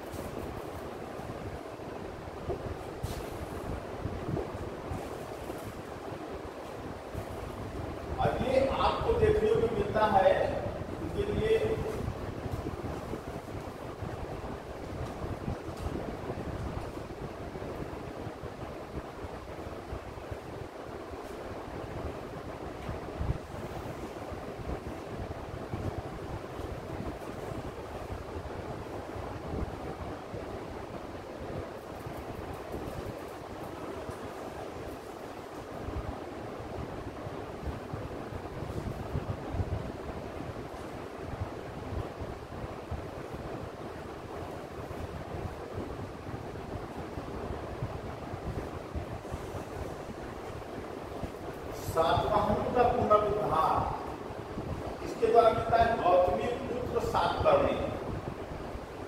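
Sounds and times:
steady rushing noise: 0.0 - 59.0.

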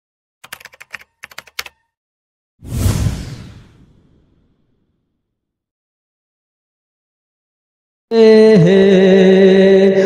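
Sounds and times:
keyboard key clicks: 0.4 - 1.9.

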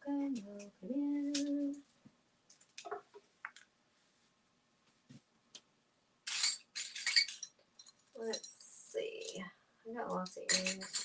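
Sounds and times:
jewelry clinking and rattling: 0.3 - 3.7, 6.2 - 9.5, 10.1 - 11.0.

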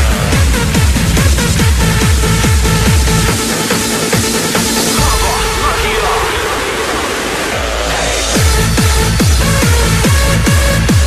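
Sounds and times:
trance music: 0.0 - 11.0
white-noise sweep: 0.2 - 9.2.

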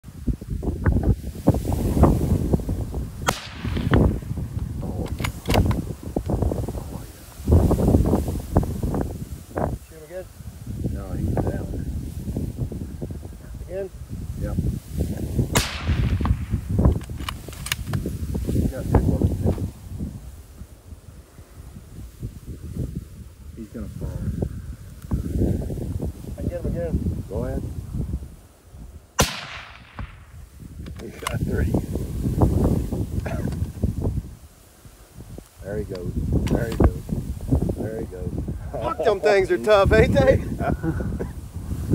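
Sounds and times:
wind buffeting microphone: 0.0 - 41.9
rifle shot with echo: 3.2 - 4.3, 15.5 - 16.7, 29.2 - 30.4
sharp cracks: 3.2 - 6.3, 15.5 - 18.0, 29.2 - 31.4.

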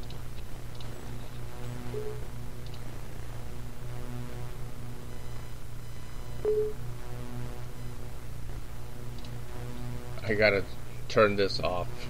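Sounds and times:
click: 0.0 - 0.9, 2.6 - 2.9, 9.1 - 9.4
low steady hum: 0.0 - 12.0.

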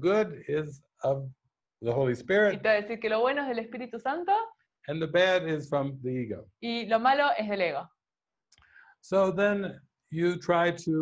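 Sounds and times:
person talking: 0.0 - 7.8, 9.1 - 11.0.

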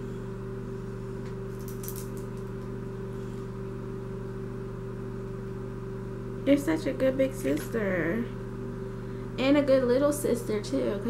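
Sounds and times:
low machine hum: 0.0 - 11.0.

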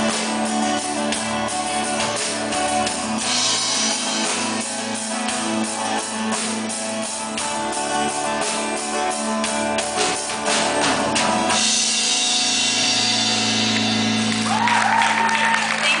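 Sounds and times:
live rock band: 0.0 - 16.0.

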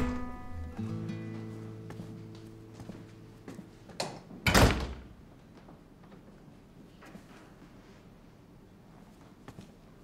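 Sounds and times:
heavy door thud: 4.5 - 5.2.

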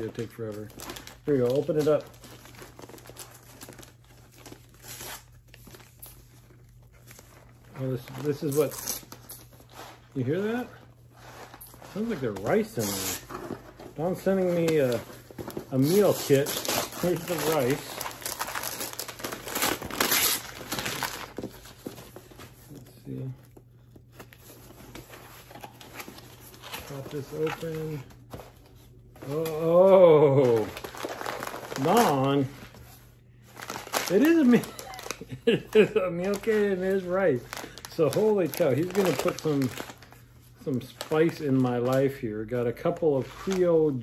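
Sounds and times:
wrapping paper tearing and crinkling: 0.0 - 23.3, 24.1 - 44.0
paper ripping: 11.5 - 15.0, 15.6 - 21.9, 29.2 - 32.7, 33.6 - 40.1.

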